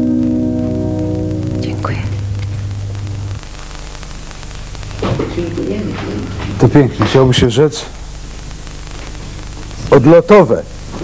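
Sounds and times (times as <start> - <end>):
low hum: 0.0 - 6.6
videotape hiss and crackle: 0.0 - 11.0.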